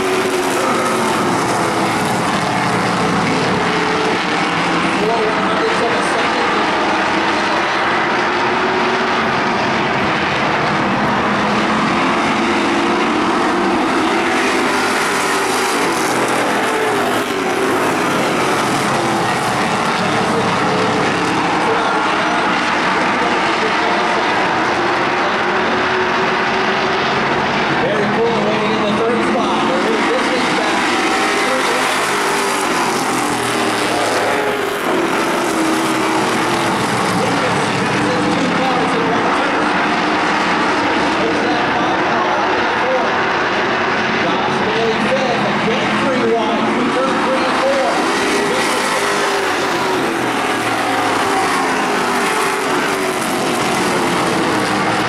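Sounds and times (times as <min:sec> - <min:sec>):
racing car engines passing: 0:00.0 - 0:55.0.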